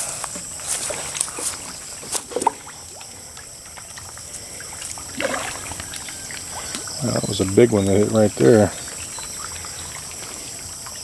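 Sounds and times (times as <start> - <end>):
fish splashing at water surface: 0.0 - 11.0.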